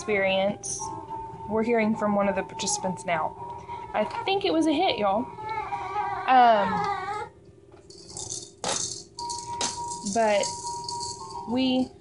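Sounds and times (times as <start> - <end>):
child whining cry: 5.3 - 7.4
rattling noises: 7.8 - 11.6.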